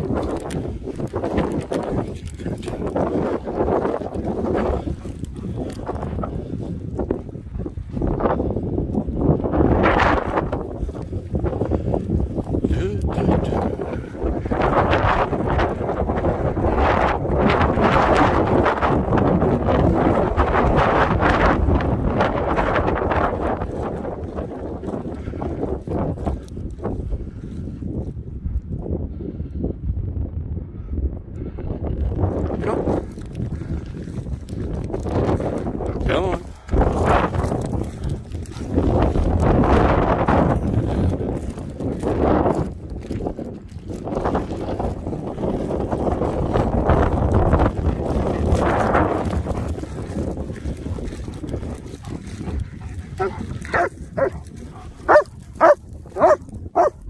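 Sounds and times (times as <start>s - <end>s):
footsteps through dry stubble: 0.0s - 28.2s, 32.3s - 57.0s
wind buffeting microphone: 0.0s - 57.0s.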